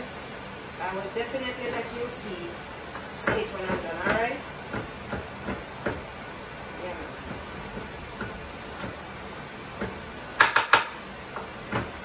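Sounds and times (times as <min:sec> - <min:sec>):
knife chopping on wooden board: 0:03.2 - 0:06.2, 0:09.7 - 0:12.0.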